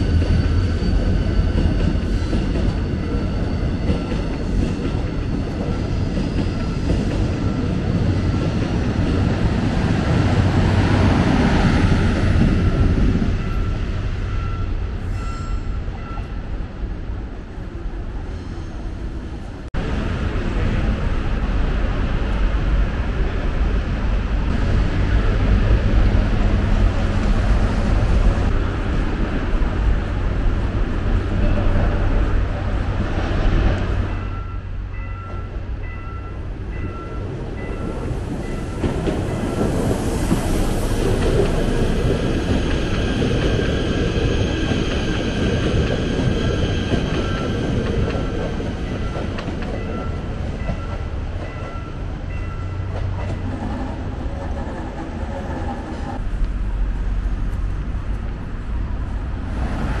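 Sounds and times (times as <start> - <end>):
train wheels rumbling on rails: 0.0 - 60.0.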